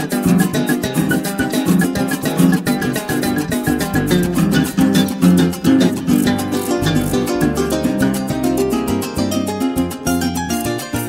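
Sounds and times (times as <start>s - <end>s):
harp playing quick plucked runs: 0.0s - 11.0s.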